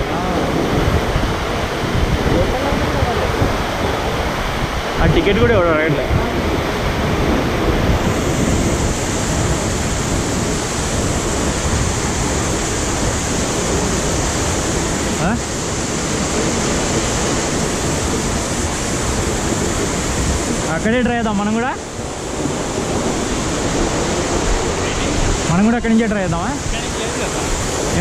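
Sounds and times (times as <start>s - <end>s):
white water rushing: 0.0s - 28.0s
wind buffeting microphone: 0.0s - 28.0s.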